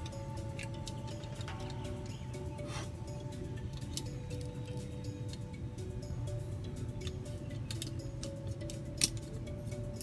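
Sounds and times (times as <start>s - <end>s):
background music: 0.0s - 10.0s
plastic toy parts clicking: 7.0s - 9.4s.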